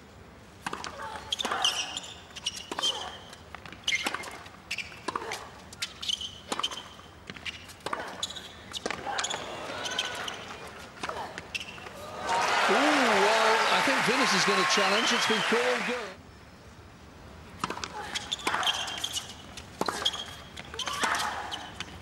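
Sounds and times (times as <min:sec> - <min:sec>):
tennis ball bouncing: 0:00.6 - 0:11.9, 0:17.6 - 0:21.2
crowd applause: 0:12.0 - 0:16.2.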